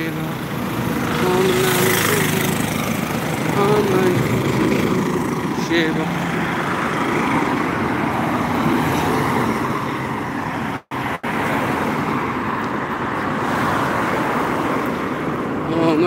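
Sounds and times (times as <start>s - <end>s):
highway traffic rushing past: 0.0s - 16.0s.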